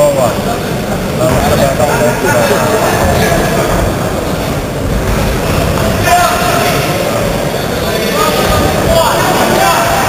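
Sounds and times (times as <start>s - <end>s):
crowd voices and shouting: 0.0s - 10.0s.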